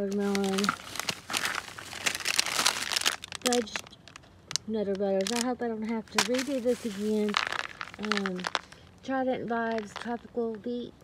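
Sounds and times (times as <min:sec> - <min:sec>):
plastic bags crinkling: 0:00.0 - 0:09.0, 0:09.6 - 0:10.3.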